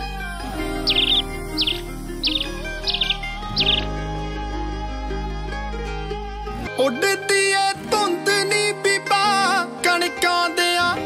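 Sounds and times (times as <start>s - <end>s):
background music: 0.0s - 11.0s
bird chirping: 0.8s - 4.0s.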